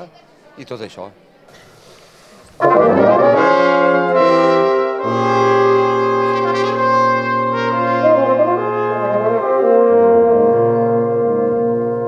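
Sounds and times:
brass quintet sustained chord: 0:02.6 - 0:12.0
tuba low note: 0:02.6 - 0:12.0.

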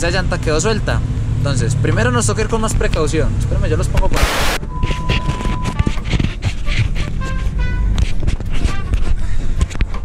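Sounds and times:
test tone beep: 0:04.2 - 0:05.8.

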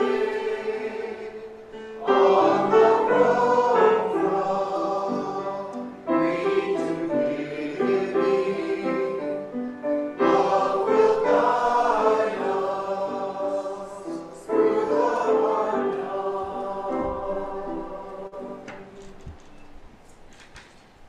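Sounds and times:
congregation singing a hymn: 0:00.0 - 0:19.8
instrumental accompaniment: 0:00.0 - 0:20.0.

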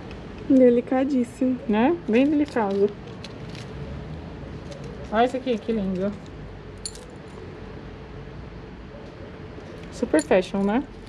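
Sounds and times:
necklace chains jingling: 0:04.6 - 0:07.2, 0:09.8 - 0:11.0.

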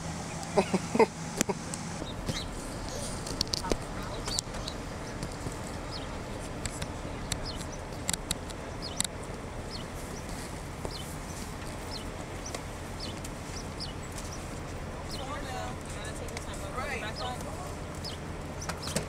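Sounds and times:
steady low rumble: 0:00.0 - 0:18.9
small birds chirping: 0:00.0 - 0:19.0
sharp clicks: 0:01.4 - 0:09.8.

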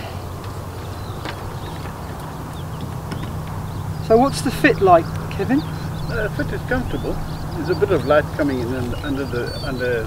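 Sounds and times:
birds chirping faintly: 0:00.0 - 0:10.0
steady low hum: 0:00.0 - 0:10.0.

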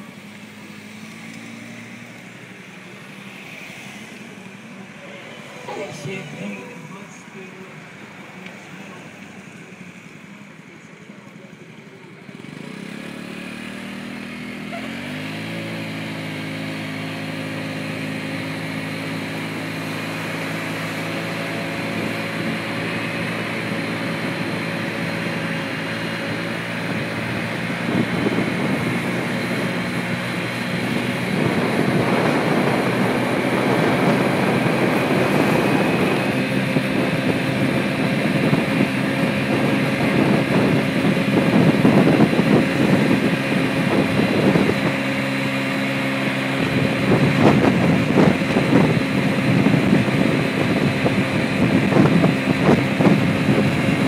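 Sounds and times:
scooter engine pulling away: 0:00.0 - 0:54.0
wind noise on microphone: 0:19.4 - 0:54.0.

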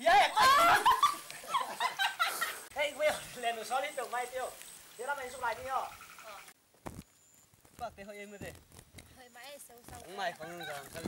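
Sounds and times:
people squealing and laughing: 0:00.0 - 0:02.7.

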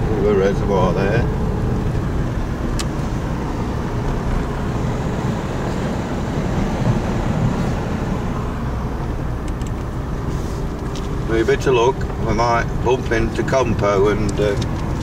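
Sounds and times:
car interior engine and road noise: 0:00.0 - 0:15.0.

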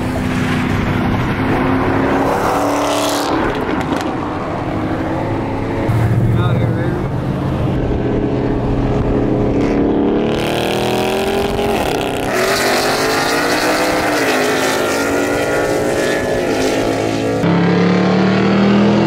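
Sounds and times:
engines accelerating: 0:00.0 - 0:19.0.

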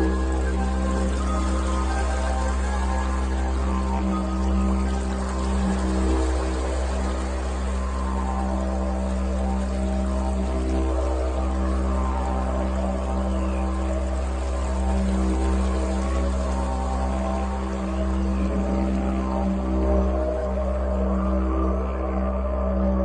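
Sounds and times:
ambient meditative music: 0:00.0 - 0:23.0
low didgeridoo drone: 0:00.0 - 0:23.0.

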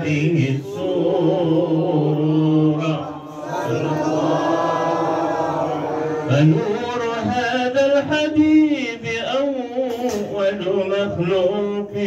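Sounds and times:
man chanting melodic recitation: 0:00.0 - 0:03.4, 0:06.2 - 0:12.0.

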